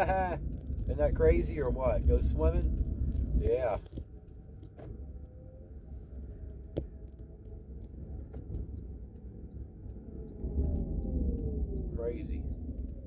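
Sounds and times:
faint whine falling in pitch: 0:00.0 - 0:13.0
road and tyre rumble in car: 0:00.0 - 0:13.0.

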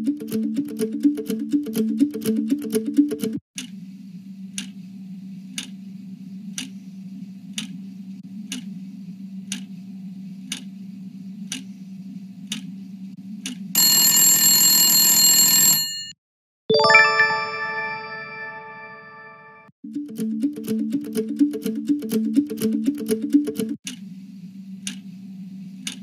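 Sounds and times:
clock ticking: 0:00.0 - 0:03.3, 0:19.9 - 0:23.8
ringing chime: 0:16.7 - 0:19.6.

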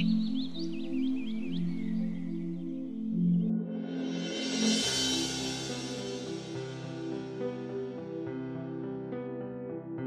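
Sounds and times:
ambient music with held chords: 0:00.0 - 0:10.0
swelling hiss: 0:03.8 - 0:07.3.

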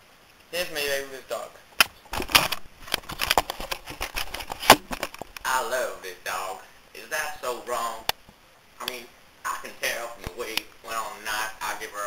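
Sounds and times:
person speaking: 0:00.5 - 0:01.7, 0:04.7 - 0:08.2, 0:08.8 - 0:12.0.

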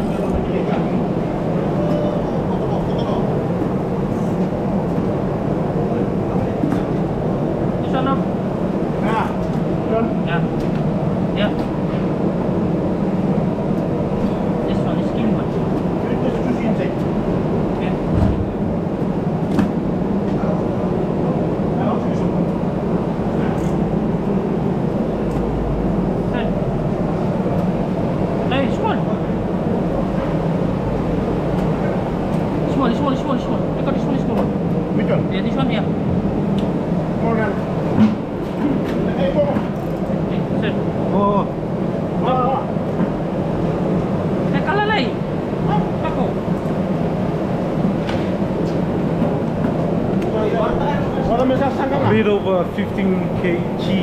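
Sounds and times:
people talking: 0:00.0 - 0:04.3, 0:07.8 - 0:08.3, 0:09.0 - 0:10.6, 0:14.2 - 0:17.1, 0:17.8 - 0:18.4, 0:21.8 - 0:22.4, 0:26.3 - 0:26.6, 0:28.5 - 0:29.3, 0:32.6 - 0:35.9, 0:37.2 - 0:37.6, 0:38.6 - 0:41.5, 0:42.2 - 0:42.7, 0:44.5 - 0:46.4, 0:50.2 - 0:54.0.

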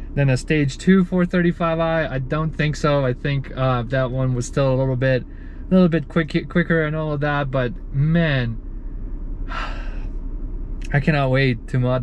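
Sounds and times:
steady low hum: 0:00.0 - 0:12.0
man talking excitedly: 0:00.2 - 0:08.6, 0:10.9 - 0:12.0
man breathing: 0:05.3 - 0:05.7, 0:08.7 - 0:10.1.

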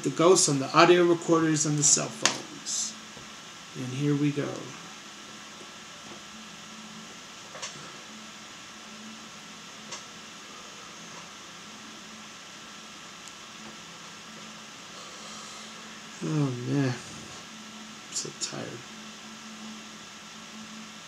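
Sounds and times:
faint hum: 0:00.0 - 0:21.0
room noise hiss: 0:00.0 - 0:21.0.

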